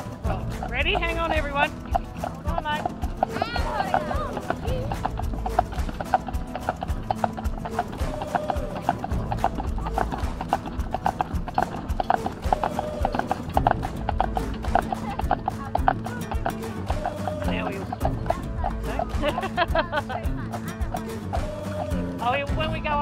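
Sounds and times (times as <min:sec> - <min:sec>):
horse hooves clip-clopping on pavement: 0:00.0 - 0:23.0.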